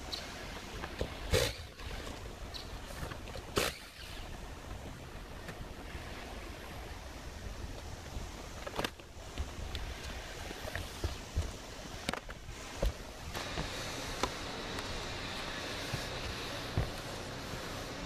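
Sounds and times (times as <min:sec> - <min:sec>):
footsteps on metal roof: 0:09.3 - 0:18.0.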